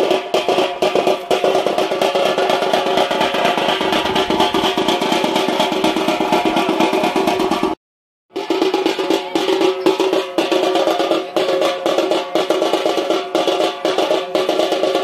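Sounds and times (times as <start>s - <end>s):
fast festival drumming: 0.0s - 15.0s.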